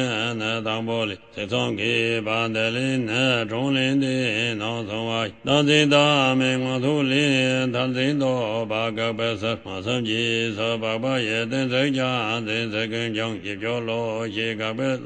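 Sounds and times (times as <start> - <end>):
person chanting fast recitation: 0.0 - 15.0.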